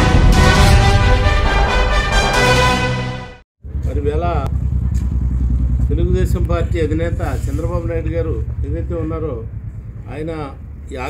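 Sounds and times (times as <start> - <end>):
low rumble: 0.0 - 2.7.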